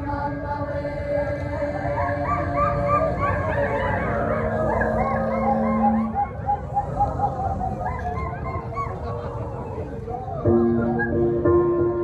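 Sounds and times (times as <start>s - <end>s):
choir imitating animal cries: 0.0s - 11.3s.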